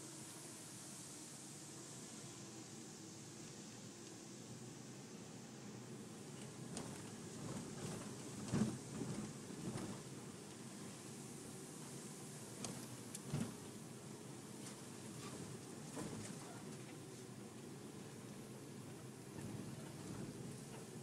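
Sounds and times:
engine and road rumble: 3.4 - 21.0.

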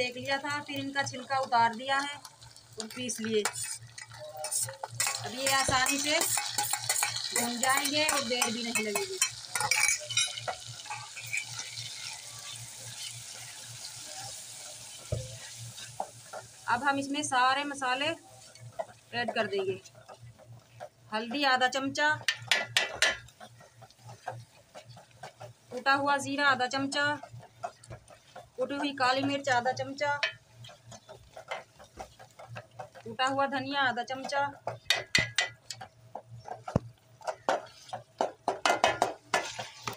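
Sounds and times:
food sizzling in oil: 0.0 - 39.9
masala frying pops: 0.0 - 39.9
wooden spatula stirring: 0.0 - 39.9
spoon scraping bowl: 2.8 - 13.5, 22.3 - 33.1.

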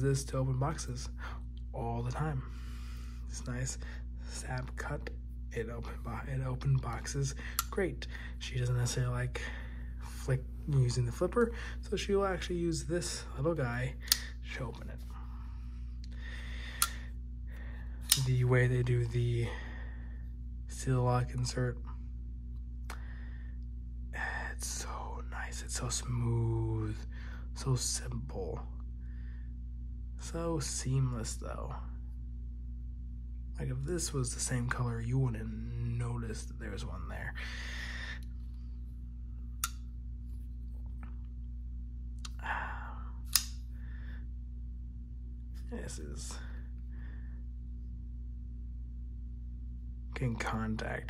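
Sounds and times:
low steady hum: 0.0 - 51.0
faint breathing: 2.4 - 4.5, 7.3 - 8.5, 9.3 - 10.6, 11.4 - 11.9, 14.0 - 18.2, 19.4 - 20.5, 22.9 - 25.0, 27.0 - 27.6, 29.0 - 29.7, 37.3 - 39.0, 42.3 - 44.5, 46.3 - 47.6
sharp click: 18.0 - 18.4, 43.2 - 43.7
folding knife metallic clicks: 43.3 - 43.6.

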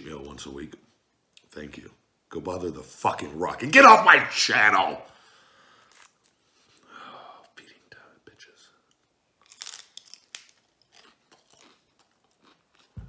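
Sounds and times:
crunchy bite of taco shell: 5.8 - 6.4, 9.4 - 13.0
crunchy chewing: 9.4 - 13.0.

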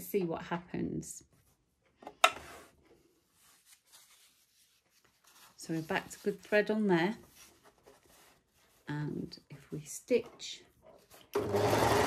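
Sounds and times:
fabric rustling: 2.8 - 9.4.

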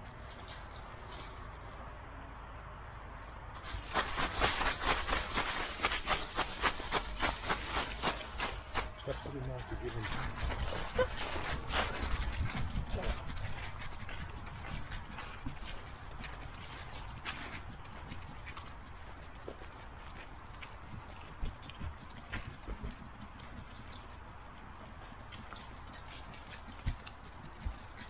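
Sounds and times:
dry leaves crunching under paws: 3.6 - 19.8.

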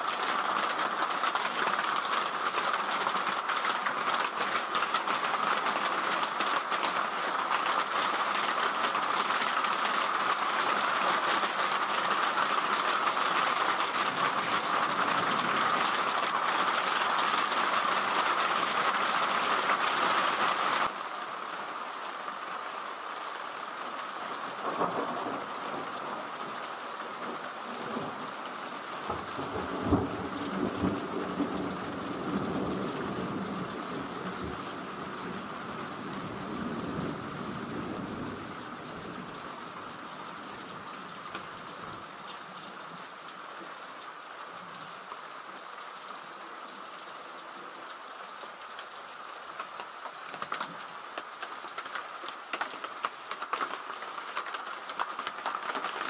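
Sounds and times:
heavy rain and hail: 0.0 - 56.0.

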